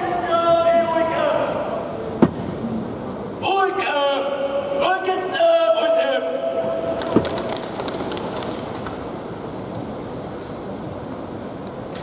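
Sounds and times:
man shouting a cheer: 0:03.4 - 0:06.6.

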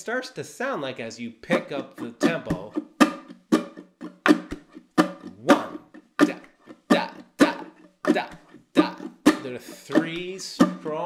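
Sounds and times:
ukulele strumming: 0:01.4 - 0:11.0.

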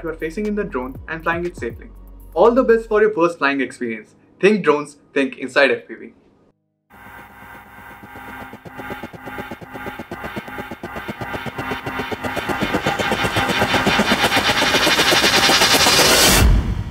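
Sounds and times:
music build: 0:00.0 - 0:03.2, 0:06.9 - 0:16.9
drone motors buzzing: 0:06.9 - 0:16.4.

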